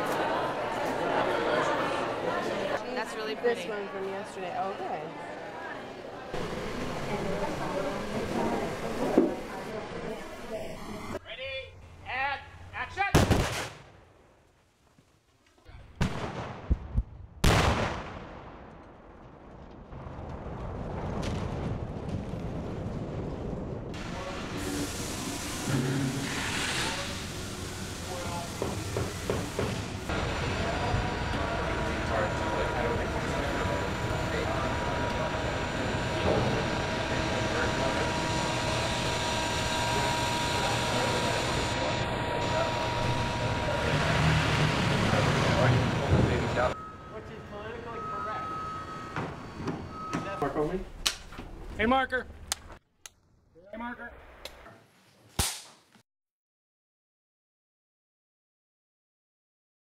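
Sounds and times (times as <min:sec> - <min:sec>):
steady background noise: 0:00.0 - 0:13.2, 0:23.9 - 0:52.8
explosion blasts with rumble: 0:16.0 - 0:24.2.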